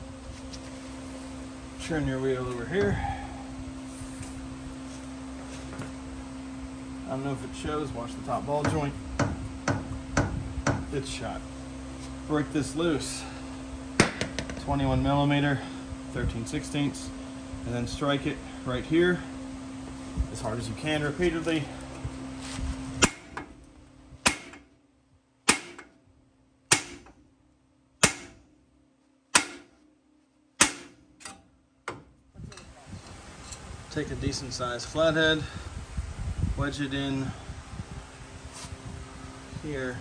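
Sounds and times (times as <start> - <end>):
steady hum: 0.0 - 40.0.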